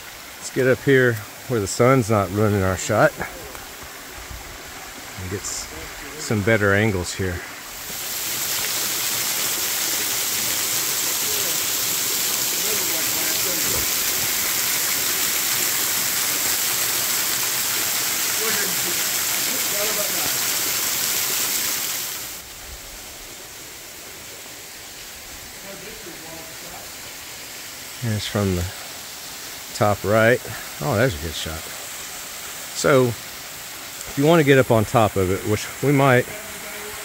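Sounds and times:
waterfall splashing onto rocks: 0:00.0 - 0:06.4, 0:07.6 - 0:37.0.

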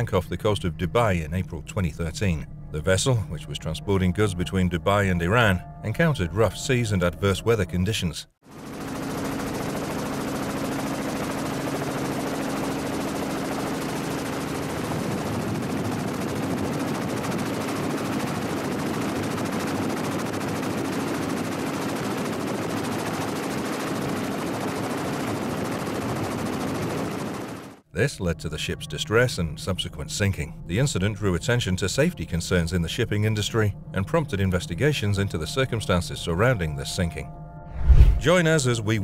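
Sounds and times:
helicopter engine and rotor: 0:08.4 - 0:27.8
low hum: 0:37.2 - 0:38.4.

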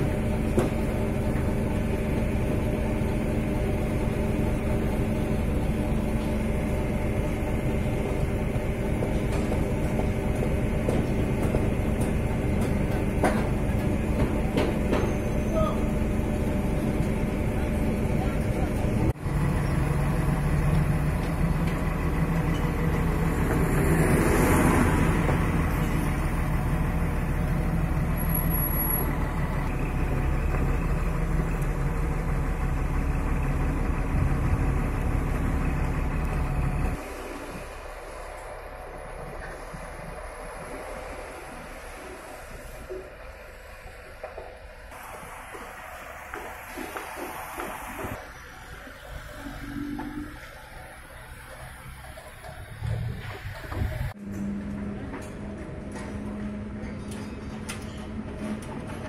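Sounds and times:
diesel crane engine under load: 0:00.0 - 0:59.0
hissing noise: 0:44.9 - 0:51.9.

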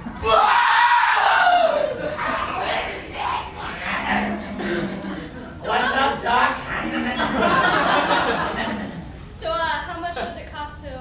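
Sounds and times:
long high scream: 0:00.2 - 0:02.6.

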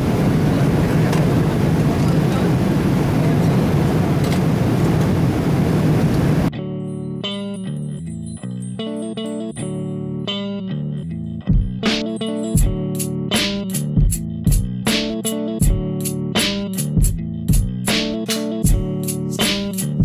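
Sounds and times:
airplane cabin noise: 0:00.0 - 0:06.5
plucked guitar and bass music: 0:06.5 - 0:20.0.

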